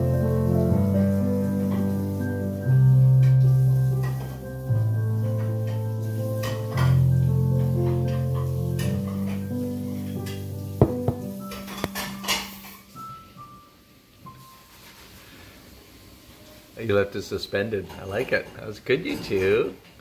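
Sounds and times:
piano duet: 0.0 - 14.8.

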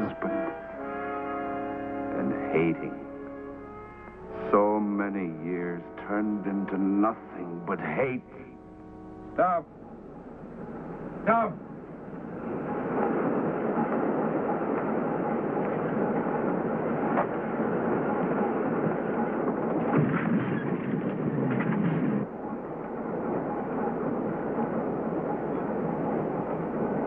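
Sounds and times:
subway train rumbling and rattling: 0.0 - 27.0.

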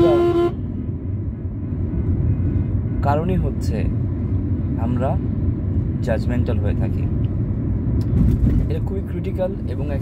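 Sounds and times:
car horn toot: 0.0 - 0.6
low rumble of car and traffic: 0.0 - 10.0.

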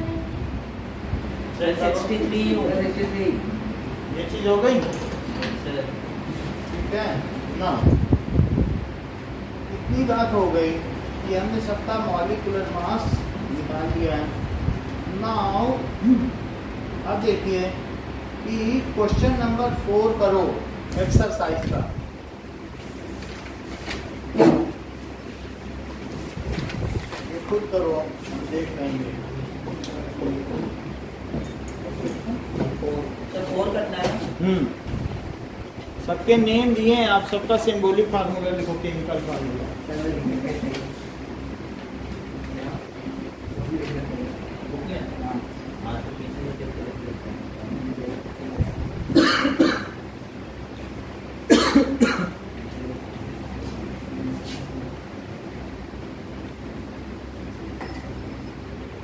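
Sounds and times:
person coughing: 49.1 - 50.0, 51.5 - 52.4.

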